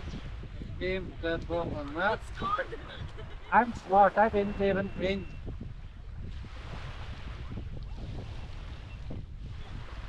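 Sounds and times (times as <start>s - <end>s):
wind buffeting microphone: 0.0s - 10.0s
small waves washing ashore: 0.1s - 10.0s.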